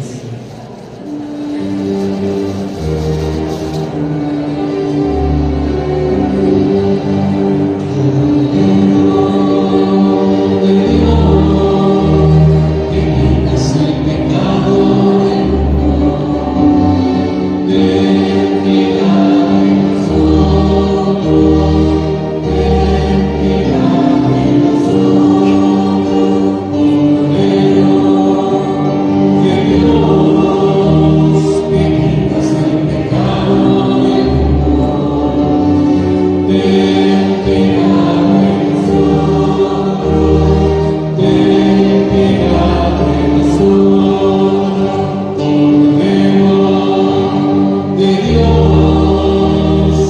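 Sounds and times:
choir singing a hymn: 0.0s - 50.0s.

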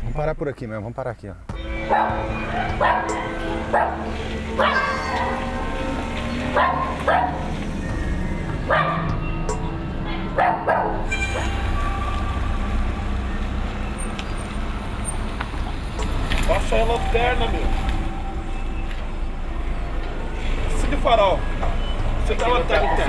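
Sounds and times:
idling vehicle engines rumble: 1.8s - 23.0s
dog barking: 1.9s - 4.0s, 4.6s - 5.5s, 6.6s - 7.4s, 8.7s - 9.1s, 10.1s - 11.6s.

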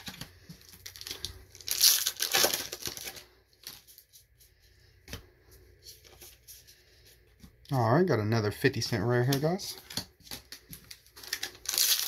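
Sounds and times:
plastic wrapper tearing and crinkling: 0.0s - 4.0s, 9.3s - 12.0s
cards rustling: 0.0s - 7.4s, 8.8s - 12.0s.

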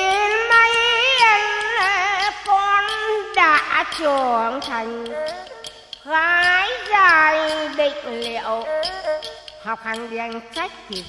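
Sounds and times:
light clicks keeping time: 0.0s - 11.0s
sliding folk melody: 0.0s - 11.0s.

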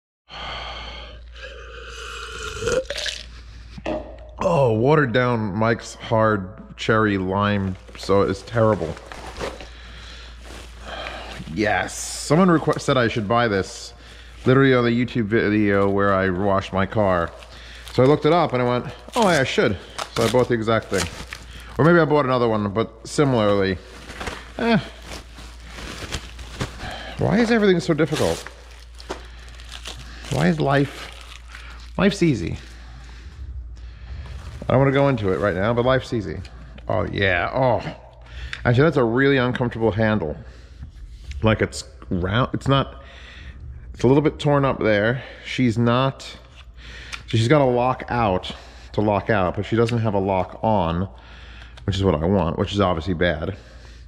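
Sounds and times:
man burping: 1.4s - 4.8s
bubble wrap crinkling: 7.6s - 33.2s, 34.2s - 36.2s.

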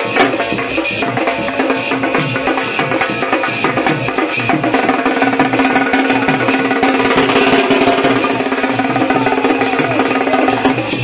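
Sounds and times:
drums beaten with sticks: 0.0s - 11.0s
small stick-played drum: 0.0s - 11.0s
small hand cymbals clashing: 0.1s - 11.0s.

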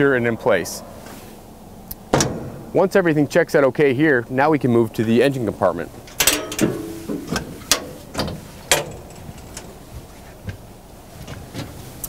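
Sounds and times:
metallic clicks and clunks of door: 2.1s - 2.8s, 6.0s - 9.8s.

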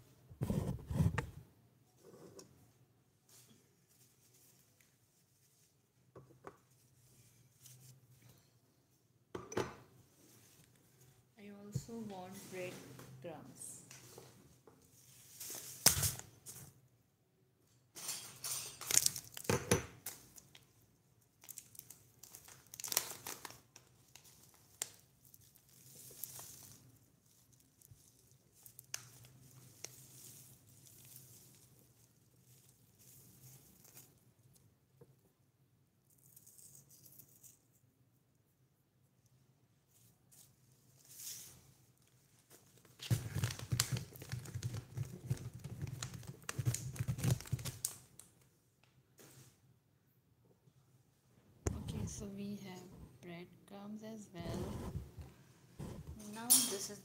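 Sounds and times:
crinkling and tearing: 18.8s - 20.7s, 21.4s - 34.6s, 39.9s - 48.4s.

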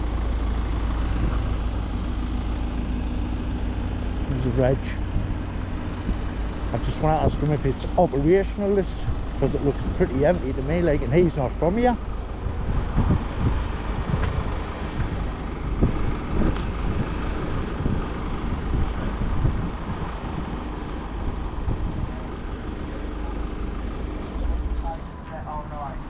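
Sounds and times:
wind buffeting microphone: 0.5s - 26.0s.

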